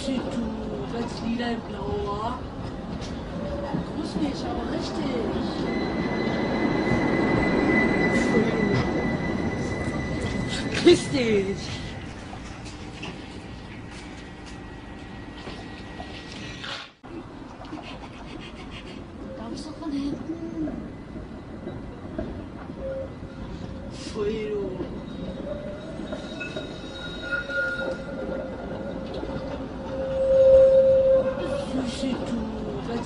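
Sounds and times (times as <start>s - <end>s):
tram wheels squealing: 0.0s - 16.9s, 18.8s - 33.0s.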